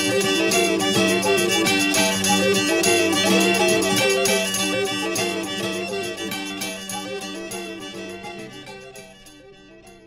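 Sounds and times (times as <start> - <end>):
folk melody over low drone: 0.0 - 10.0.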